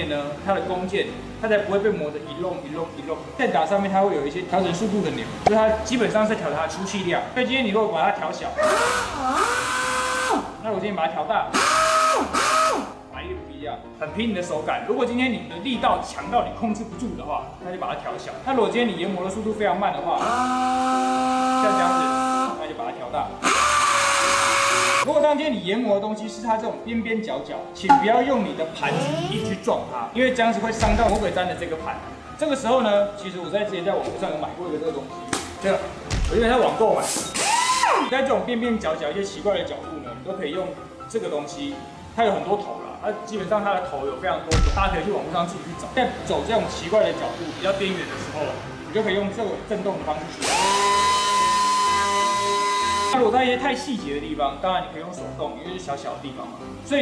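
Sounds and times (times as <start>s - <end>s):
air sander hissing and whining: 8.6s - 10.5s, 11.6s - 12.9s, 20.2s - 22.5s, 23.4s - 25.1s, 50.4s - 53.2s
detail sander whining: 50.4s - 53.2s.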